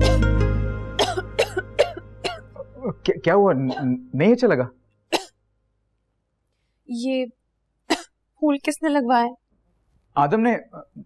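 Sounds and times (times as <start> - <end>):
woman coughing: 1.0 - 2.7, 3.7 - 4.0, 5.1 - 5.4, 7.9 - 8.2.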